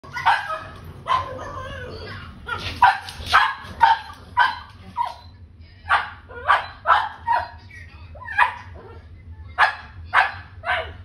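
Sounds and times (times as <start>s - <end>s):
puppy barking: 0.1s - 5.3s, 5.9s - 7.6s, 8.2s - 9.0s, 9.6s - 11.0s.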